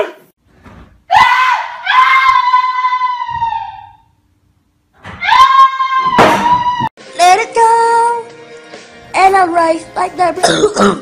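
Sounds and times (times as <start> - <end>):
person screaming: 1.1 - 4.1, 5.2 - 6.9.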